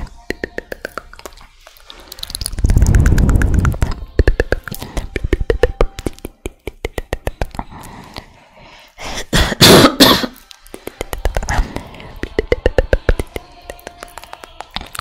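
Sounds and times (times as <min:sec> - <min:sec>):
wet mouth clicks and pops: 0:00.0 - 0:08.3, 0:10.4 - 0:15.0.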